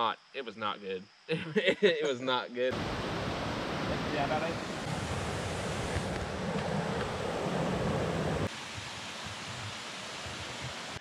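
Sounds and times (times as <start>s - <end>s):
rushing outdoor noise: 2.7s - 11.0s.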